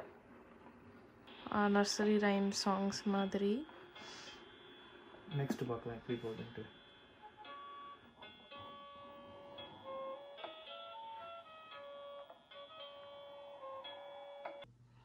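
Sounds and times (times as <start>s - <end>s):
baby swing electronic melody: 1.3s - 14.7s.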